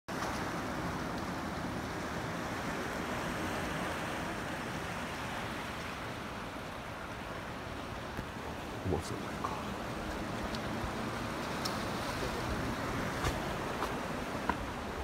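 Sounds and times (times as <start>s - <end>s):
small waves washing around rocks: 0.1s - 15.0s.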